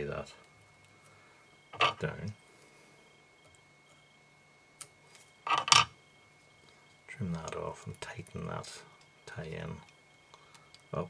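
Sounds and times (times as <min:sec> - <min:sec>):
faint hum: 0:00.0 - 0:11.0
tools handling clatter: 0:01.8 - 0:02.0.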